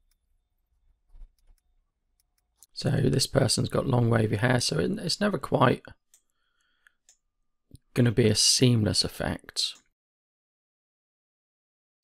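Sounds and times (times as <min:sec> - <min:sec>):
man's voice: 0:02.8 - 0:05.9, 0:08.0 - 0:09.8.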